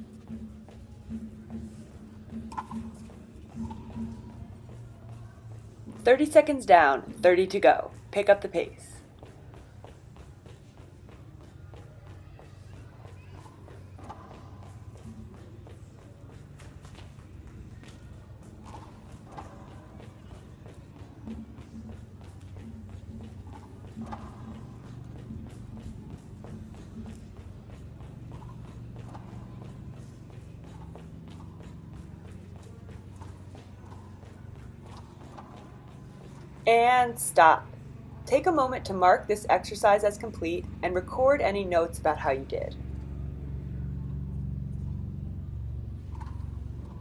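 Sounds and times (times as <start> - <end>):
quiet background music: 0.0 - 47.0.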